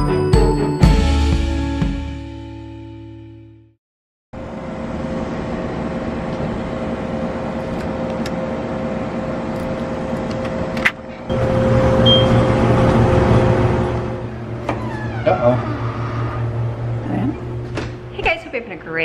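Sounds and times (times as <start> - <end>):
mechanical hum: 4.4 - 19.0.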